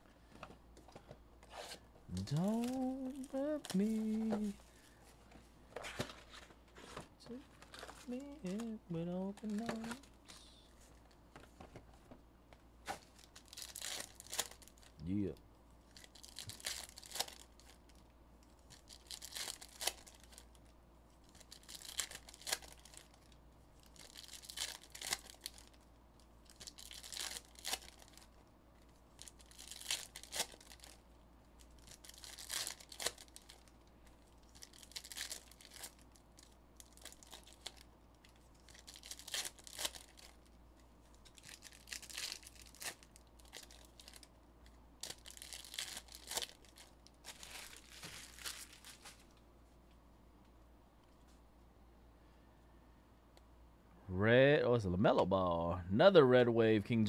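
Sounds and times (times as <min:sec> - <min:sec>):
foil wrappers tearing and crinkling: 0:02.1 - 0:04.6, 0:07.6 - 0:10.4, 0:13.0 - 0:14.9, 0:15.9 - 0:18.0, 0:18.6 - 0:20.6, 0:21.2 - 0:25.8, 0:26.4 - 0:28.3, 0:29.1 - 0:31.0, 0:31.6 - 0:40.5, 0:41.2 - 0:44.3, 0:45.0 - 0:49.3.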